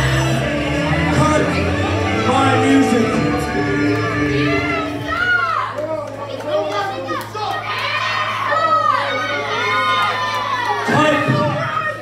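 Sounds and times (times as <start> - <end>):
low hum: 0.0 - 5.7
crowd shouting and yelling: 0.0 - 12.0.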